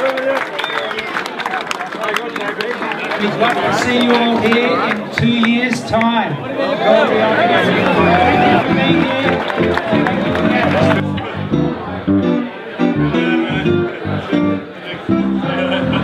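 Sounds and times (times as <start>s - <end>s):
people talking and laughing: 0.9s - 16.0s
hollow-body electric guitar: 7.9s - 16.0s.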